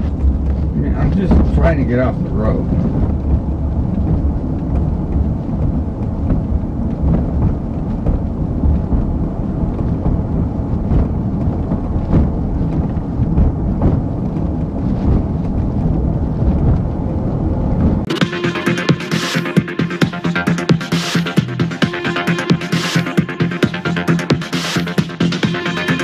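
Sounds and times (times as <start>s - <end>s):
tyre and road noise: 0.0s - 26.0s.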